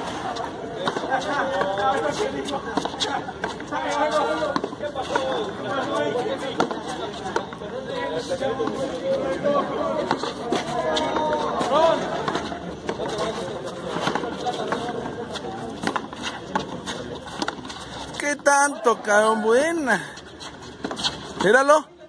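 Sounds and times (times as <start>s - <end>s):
voices chattering: 0.0s - 22.0s.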